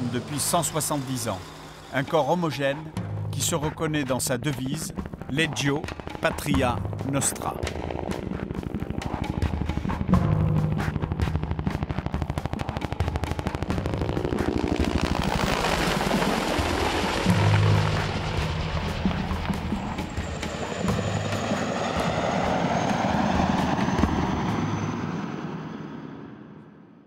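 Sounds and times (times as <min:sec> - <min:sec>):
music: 0:00.0 - 0:26.0
helicopter rotor beating: 0:00.0 - 0:26.5.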